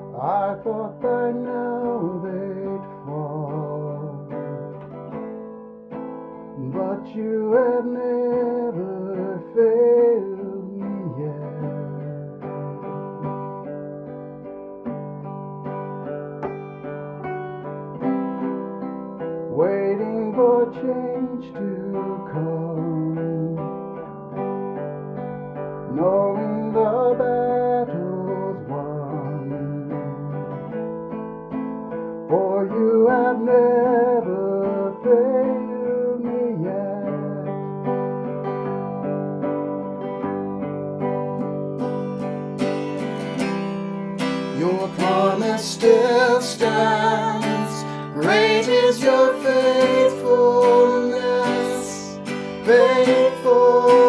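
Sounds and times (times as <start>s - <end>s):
acoustic guitar: 0.0s - 54.0s
people singing worship song: 47.6s - 54.0s.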